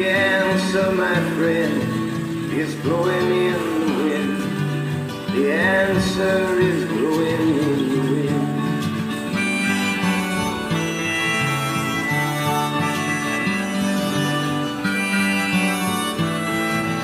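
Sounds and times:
harmonica melody: 0.0 - 17.0
strummed acoustic guitar: 0.0 - 17.0.

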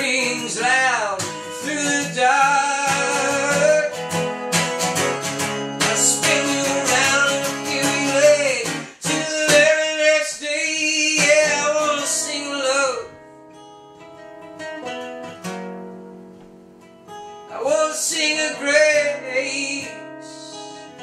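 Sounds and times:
man singing: 0.0 - 4.3, 5.8 - 13.2, 17.5 - 21.0
strummed acoustic guitar: 0.0 - 21.0.

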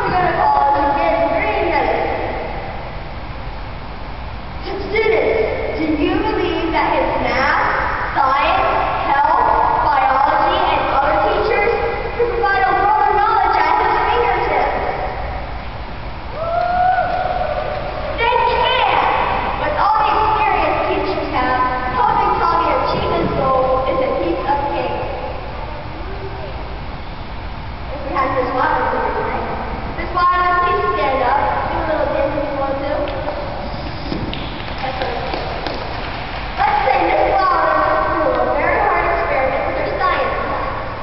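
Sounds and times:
room hum: 0.0 - 41.0
faint voices: 16.4 - 26.8
person speaking: 17.9 - 26.7, 27.9 - 40.7.

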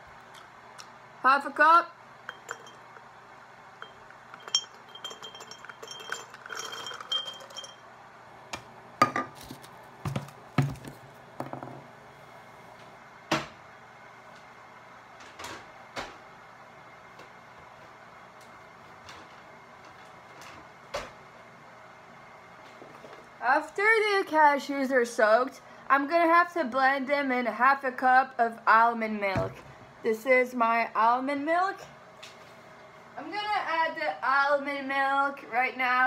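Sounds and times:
nuts clinking into glass jar: 2.3 - 2.9, 3.8 - 7.8
kitchen things knocking: 9.0 - 9.4, 10.1 - 11.8.

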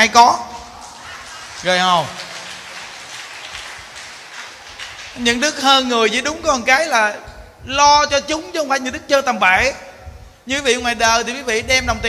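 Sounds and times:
audience applause: 0.6 - 5.8.

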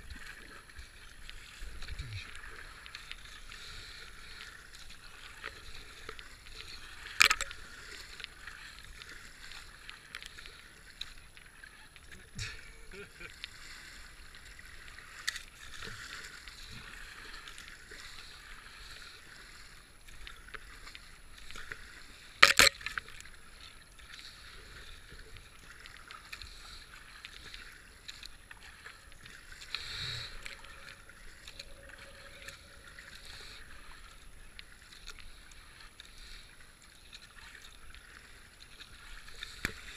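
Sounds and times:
paddle splashing in water: 0.0 - 39.9.

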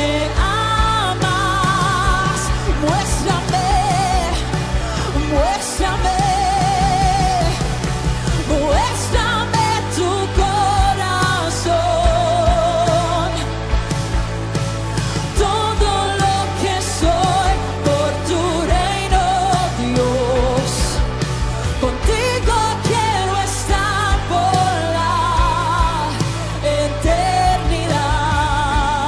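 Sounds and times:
woman singing with vibrato: 0.0 - 13.8, 15.0 - 29.0
band with drums and bass: 0.0 - 29.0.

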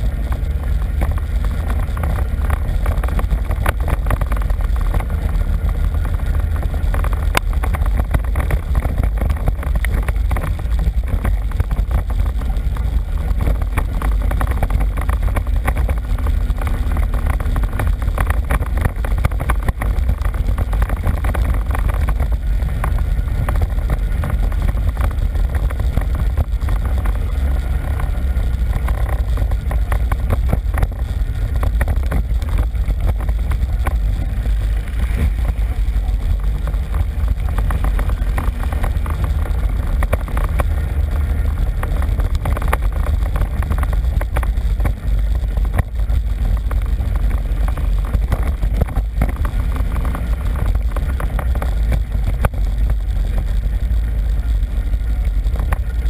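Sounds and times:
atv engine rumbling: 0.0 - 56.0.

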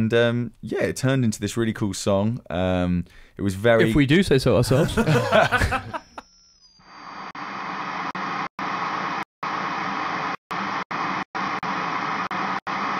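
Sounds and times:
electronic static hiss: 6.9 - 12.9.

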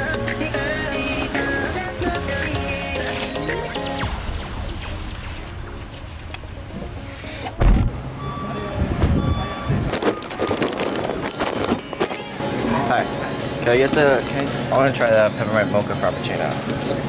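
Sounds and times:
faint background music: 0.0 - 17.0
loud bump: 7.6 - 8.0.

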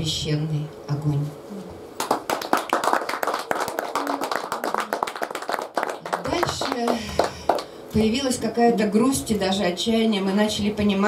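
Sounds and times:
audience applause: 2.0 - 7.8.

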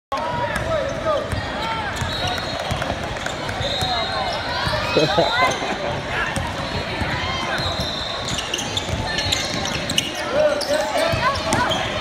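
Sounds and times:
crowd chatter in large hall: 0.1 - 12.0
sneakers squeaking on floor: 0.6 - 12.0.

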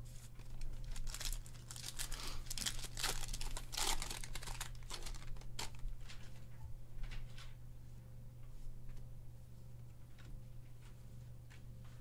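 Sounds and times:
card pack wrapper crinkling: 0.4 - 6.3.

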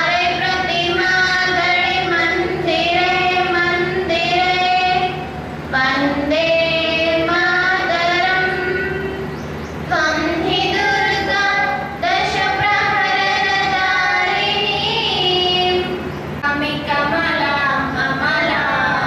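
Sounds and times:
young female voices singing: 0.0 - 19.0.

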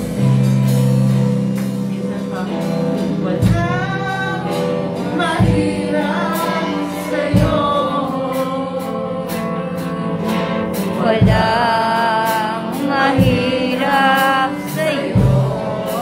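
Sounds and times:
bass: 0.0 - 16.0
guitars: 0.0 - 16.0
heavy drum beat: 0.0 - 16.0
voices singing: 2.3 - 16.0.

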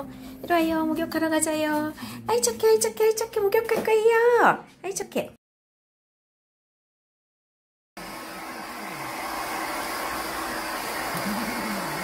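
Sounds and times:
hair dryer blowing: 8.0 - 12.0.

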